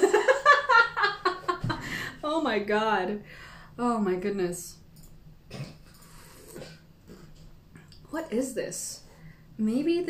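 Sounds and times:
intake of breath: 1.8 - 2.2, 3.3 - 3.8
slurping tea from a spoon: 5.6 - 7.5.

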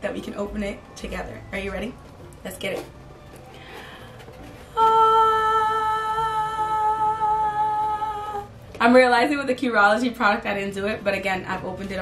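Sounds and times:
woman speaking: 0.0 - 2.9, 4.8 - 12.0.

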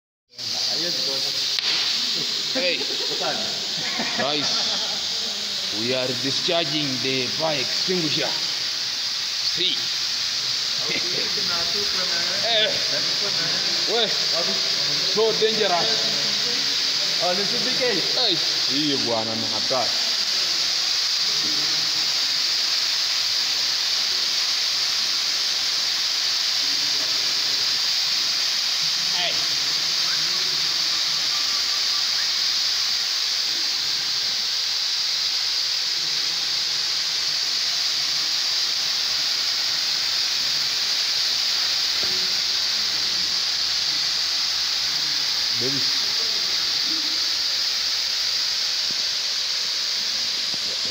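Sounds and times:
fire extinguishers hissing: 0.3 - 50.9.

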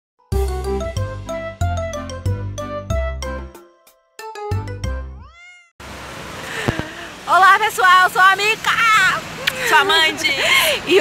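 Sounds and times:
steady traffic noise: 5.8 - 11.0.

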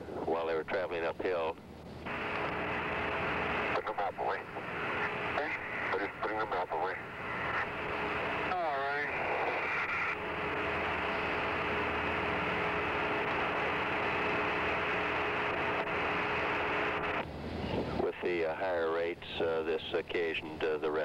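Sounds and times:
faint hum: 0.0 - 21.0
radio static hiss: 0.0 - 21.0
garbled radio voice: 3.7 - 7.7.

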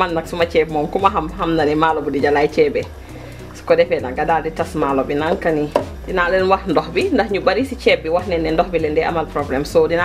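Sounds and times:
woman talking: 0.0 - 3.0, 3.6 - 10.0
spoon knocking and scraping pot: 5.3 - 6.1.

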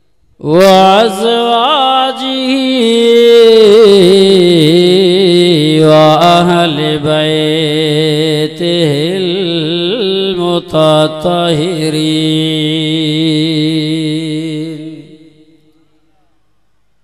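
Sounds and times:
man chanting melodically: 0.4 - 16.4.

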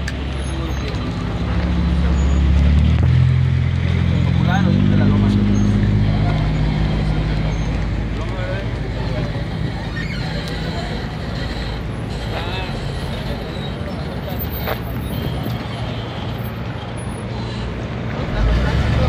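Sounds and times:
vehicle engine running: 0.0 - 15.0
voices: 0.0 - 19.0.

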